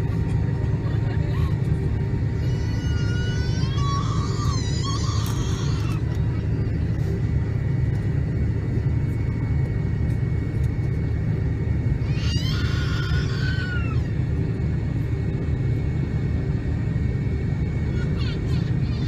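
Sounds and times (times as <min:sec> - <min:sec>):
airliner cabin engine rumble: 0:00.0 - 0:19.0
faint steady whine: 0:00.0 - 0:19.0.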